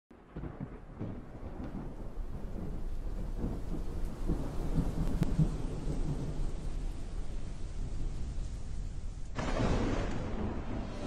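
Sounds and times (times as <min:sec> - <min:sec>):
low rumble like thunder: 0:00.1 - 0:11.0
rain hiss: 0:01.0 - 0:11.0.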